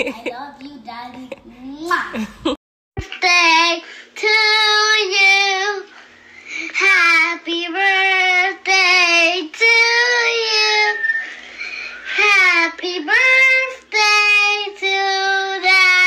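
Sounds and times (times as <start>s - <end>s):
girl singing alone: 3.0s - 6.0s, 6.7s - 11.1s, 12.0s - 16.0s.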